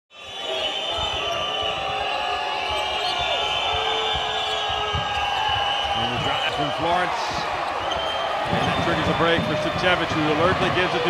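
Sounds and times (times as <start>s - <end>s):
crowd noise in arena: 0.1s - 11.0s.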